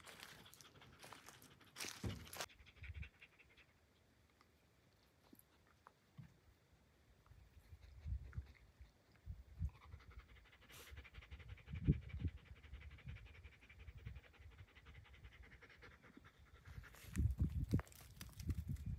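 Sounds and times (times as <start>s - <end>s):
dog panting: 0.0s - 3.8s, 9.6s - 17.6s.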